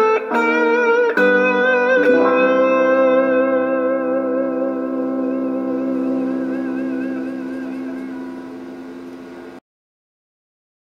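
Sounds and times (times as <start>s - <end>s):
electric guitar chord ringing: 0.0s - 9.6s.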